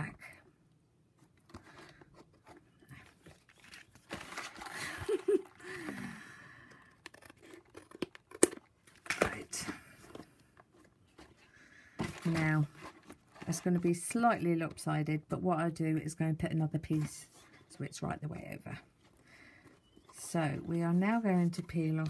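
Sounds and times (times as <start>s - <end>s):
paper rustling and crinkling: 1.3s - 6.0s, 10.0s - 14.4s.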